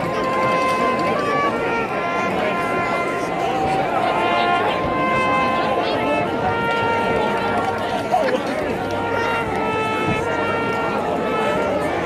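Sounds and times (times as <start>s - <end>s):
marching band playing chords: 0.0s - 12.0s
spectators chattering: 0.0s - 12.0s.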